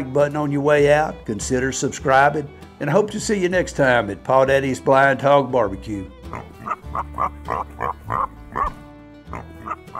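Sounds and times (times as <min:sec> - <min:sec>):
background music with low drone: 0:00.0 - 0:09.9.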